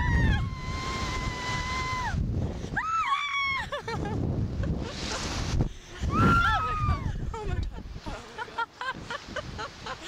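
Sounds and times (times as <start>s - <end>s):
women screaming: 0.0s - 3.9s, 6.1s - 7.2s
wind rumble on microphone: 0.0s - 10.0s.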